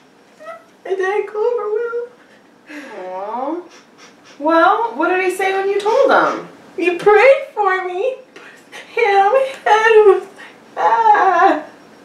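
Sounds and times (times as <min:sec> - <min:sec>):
woman crying: 0:08.8 - 0:11.7.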